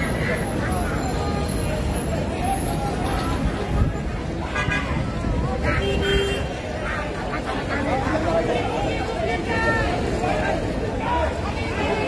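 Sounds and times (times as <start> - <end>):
crowd of people talking: 0.0 - 12.0
steady traffic noise: 0.0 - 12.0.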